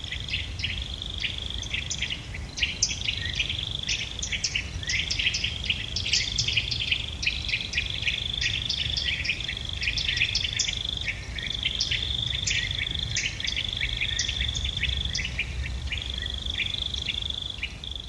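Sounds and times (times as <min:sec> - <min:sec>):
bird-like chirps: 0:00.0 - 0:18.0
crickets trilling: 0:00.0 - 0:18.0.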